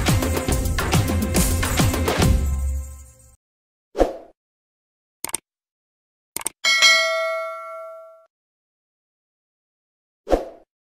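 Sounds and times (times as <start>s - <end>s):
double clicks: 5.2s - 5.4s, 6.4s - 6.6s
bright bell ding: 6.6s - 8.3s.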